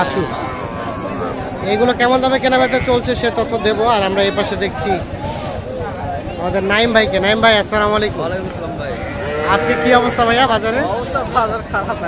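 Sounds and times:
people talking: 0.0 - 12.0
calf mooing: 8.9 - 10.4.

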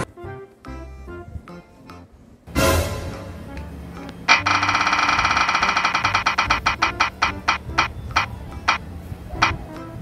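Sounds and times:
prize wheel ringing ticks: 4.3 - 8.8.

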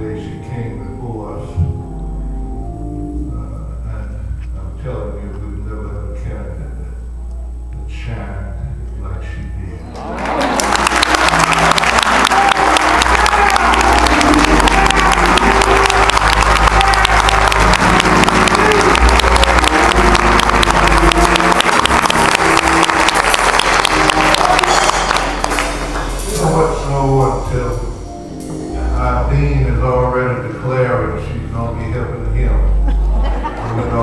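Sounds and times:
music playing: 0.0 - 34.0
congregation applauding: 9.8 - 27.5.

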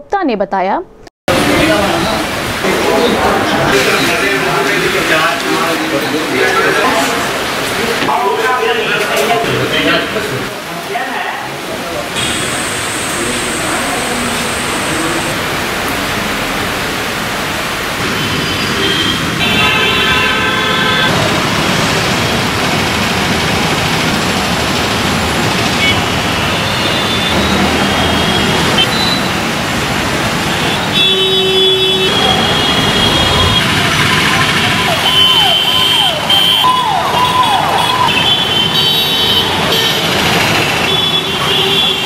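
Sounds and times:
road traffic: 1.3 - 42.0
vehicle horns honking: 18.0 - 21.2, 25.6 - 29.5, 30.4 - 42.0.

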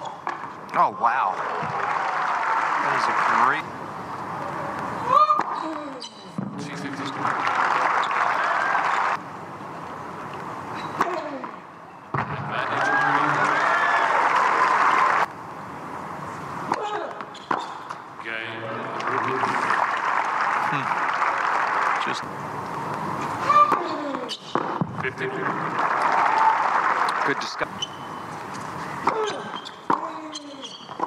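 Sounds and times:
crowd cheering and applauding: 1.0 - 3.6, 6.9 - 9.2, 12.5 - 15.3, 18.8 - 22.2, 25.3 - 27.6.

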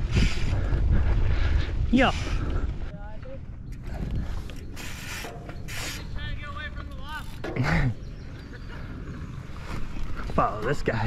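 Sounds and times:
wind rumbling on microphone: 0.0 - 6.5.

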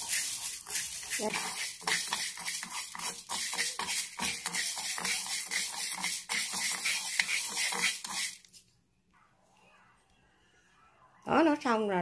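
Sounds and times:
rice grains scraped in dry pan: 0.0 - 8.6.

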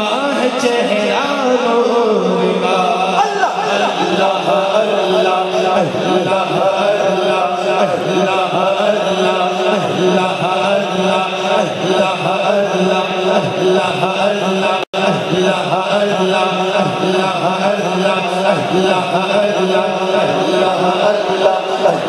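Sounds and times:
man chanting through a pa: 0.0 - 22.0.

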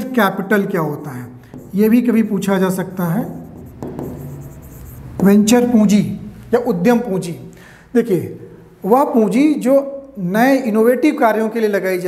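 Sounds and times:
person speaking: 0.0 - 12.0
marker pen scratching on board: 1.5 - 5.8.

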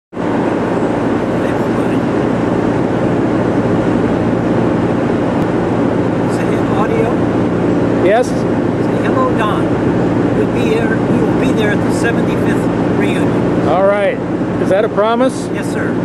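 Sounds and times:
loud mechanical drone: 0.1 - 16.0.

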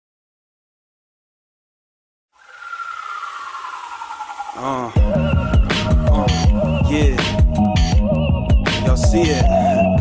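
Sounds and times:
tone gliding down: 2.4 - 7.0
steady high tone: 2.4 - 7.4.

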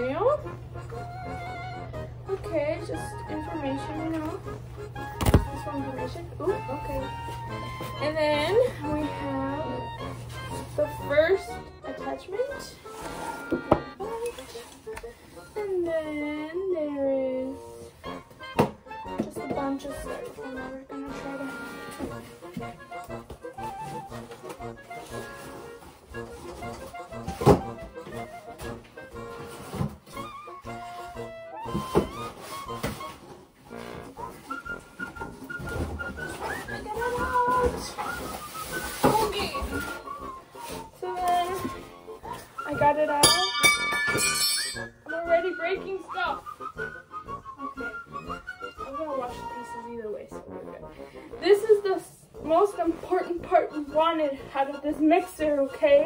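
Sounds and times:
background music: 0.0 - 56.0.

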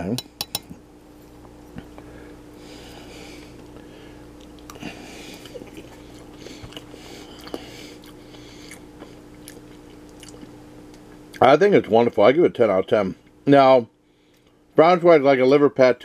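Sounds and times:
steady low hum: 0.0 - 16.0
person chewing wet mouth sounds: 4.4 - 10.5.

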